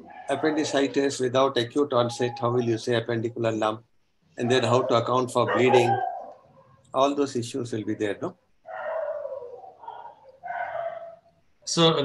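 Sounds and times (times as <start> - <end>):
dog making drawn-out calls: 0.0 - 2.8, 4.4 - 6.8, 8.7 - 11.3.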